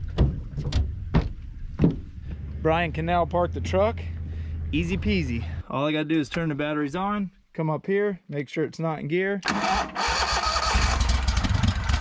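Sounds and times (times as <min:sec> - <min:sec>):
footsteps on boat deck: 0:00.0 - 0:02.6.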